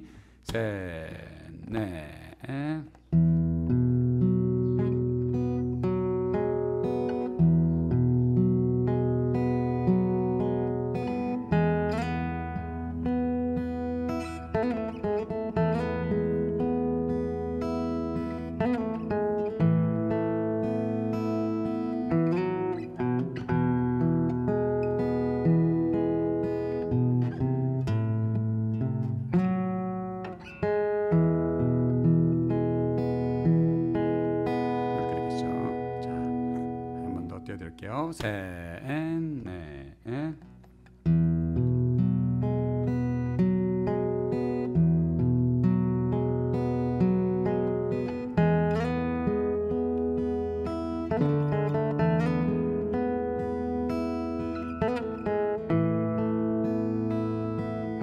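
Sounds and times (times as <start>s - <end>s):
fingerpicked acoustic guitar: 0.0s - 58.0s.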